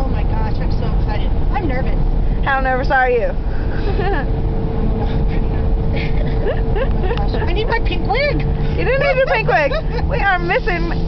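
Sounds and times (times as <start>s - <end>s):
car road and engine rumble: 0.0s - 11.0s
woman laughing: 3.8s - 4.3s, 5.9s - 7.6s, 8.8s - 10.6s.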